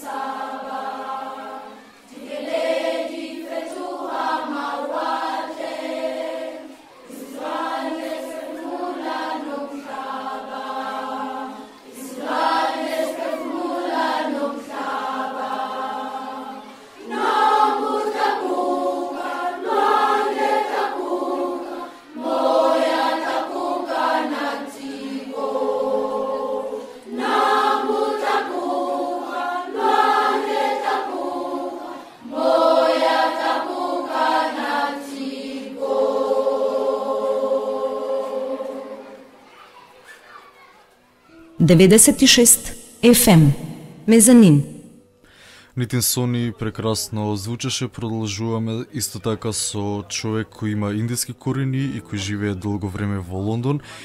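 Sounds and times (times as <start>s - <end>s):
choir singing long notes: 0.0s - 39.5s, 42.3s - 45.1s.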